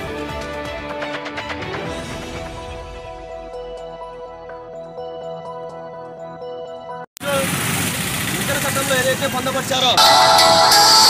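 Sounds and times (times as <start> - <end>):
people talking: 7.2 - 7.6, 8.3 - 10.1.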